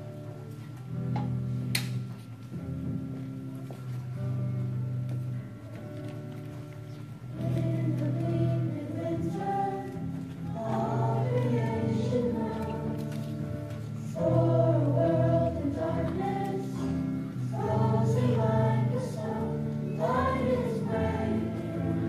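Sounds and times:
children's choir singing: 7.3s - 22.0s.

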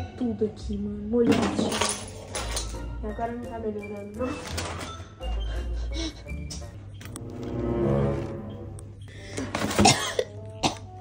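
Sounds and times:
background music: 0.0s - 11.0s
person coughing: 9.5s - 10.8s.

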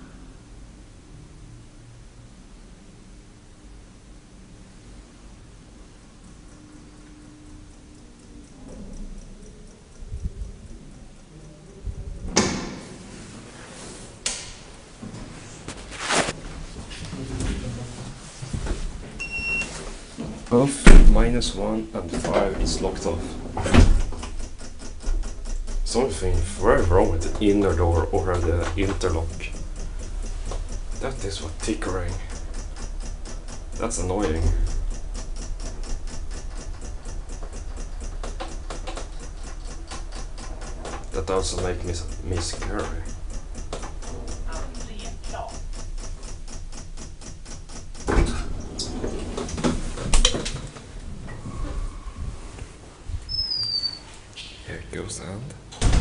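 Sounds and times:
elevator door mechanism ticking: 4.2s - 15.2s, 19.2s - 51.8s, 53.2s - 54.4s, 55.7s - 56.0s
loud thumps: 20.8s - 21.4s, 55.8s - 56.0s.

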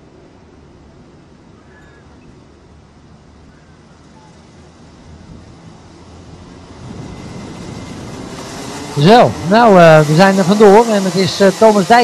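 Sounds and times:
distant kart engines racing: 3.2s - 12.0s.

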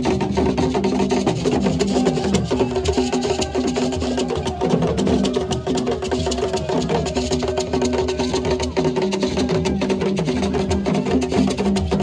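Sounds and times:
hand drums: 0.0s - 12.0s.

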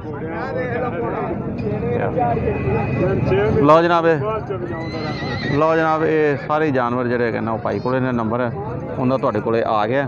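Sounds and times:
men talking: 0.0s - 10.0s
horse whinnying: 4.7s - 6.1s.

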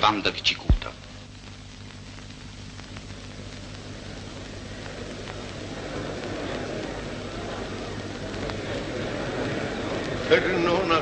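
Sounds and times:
film soundtrack hiss: 0.0s - 11.0s
grainy noise: 0.0s - 11.0s
mains hum: 0.0s - 11.0s.

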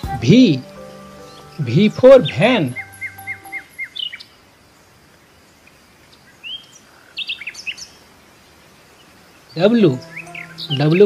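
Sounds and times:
small birds chirping: 0.0s - 8.1s, 8.8s - 11.0s.

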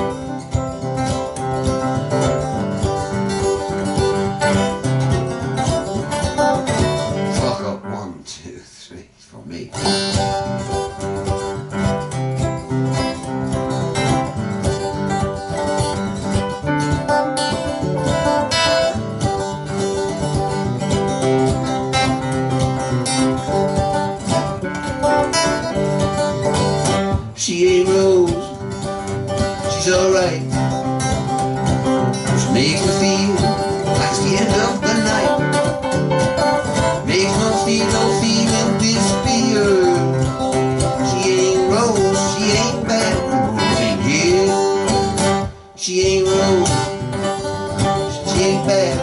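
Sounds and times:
acoustic guitar: 0.0s - 49.0s.

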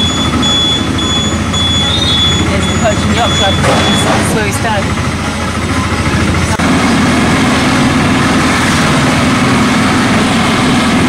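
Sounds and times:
motorboat engine drone: 0.0s - 11.0s.

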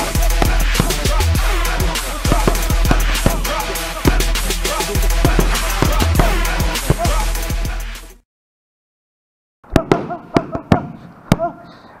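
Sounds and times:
boxing gloves slapping mitts: 0.0s - 1.2s, 2.3s - 4.3s, 9.7s - 11.5s.

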